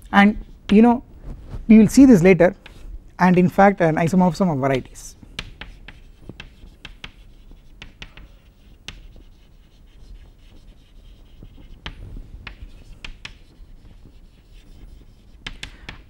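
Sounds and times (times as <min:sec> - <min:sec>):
chalk scratching strokes: 0:01.8 - 0:16.0
chalk tapping on chalkboard: 0:02.6 - 0:03.6, 0:04.3 - 0:16.0.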